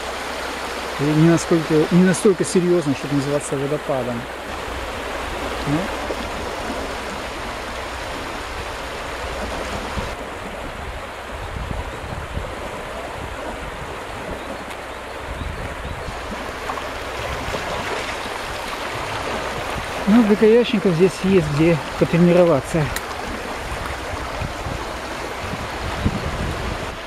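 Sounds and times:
river rushing over rapids: 0.0 - 27.0.

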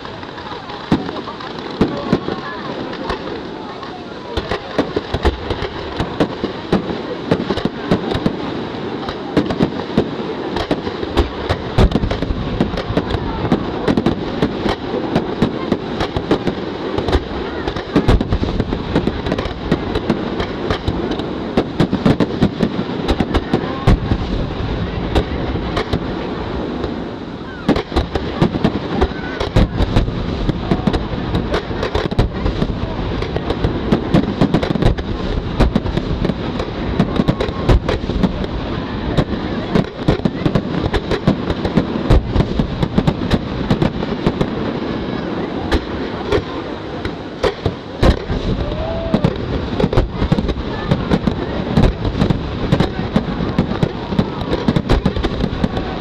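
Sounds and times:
fireworks bursting and crackling: 0.0 - 56.0.

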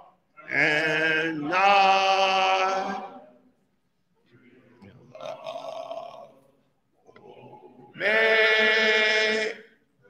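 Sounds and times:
men's voices murmuring in hall: 0.0 - 5.7.

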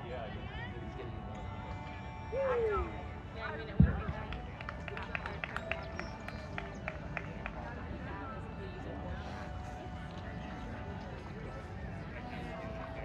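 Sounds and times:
spectators murmuring: 0.0 - 13.0
dull low thump: 3.7 - 4.3.

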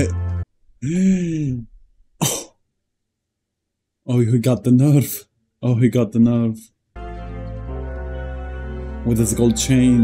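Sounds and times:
man coughing breath: 2.2 - 2.6.

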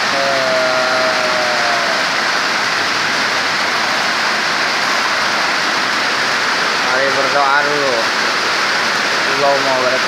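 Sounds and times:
rain falling steadily: 0.0 - 10.0.

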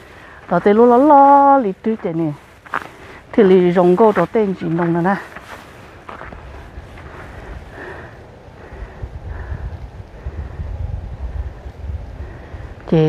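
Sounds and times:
person speaking: 0.0 - 2.5, 3.2 - 5.4
wind noise on microphone: 0.0 - 13.0.

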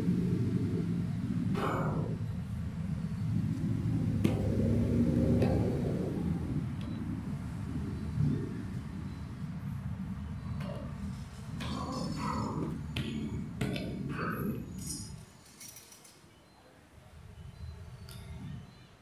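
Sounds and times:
low outdoor rumble: 0.0 - 15.4.

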